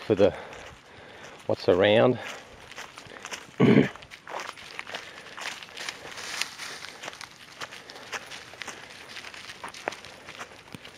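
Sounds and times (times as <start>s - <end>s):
footsteps on dry leaf litter: 0.0s - 10.9s.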